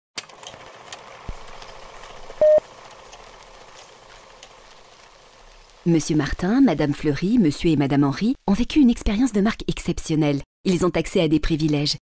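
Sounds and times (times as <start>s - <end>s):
steady hiss with crackling clicks: 0.2s - 7.6s
short beep: 2.4s - 2.6s
woman's voice: 5.8s - 12.0s.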